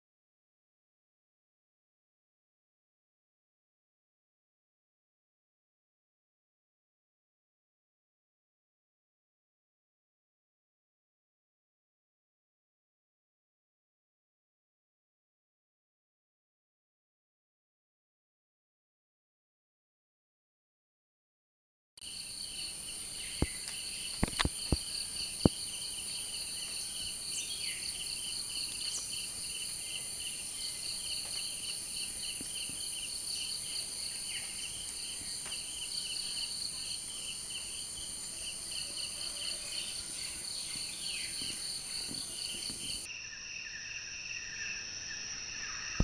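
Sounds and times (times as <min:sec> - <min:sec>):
insects trilling: 0:22.0 - 0:46.0.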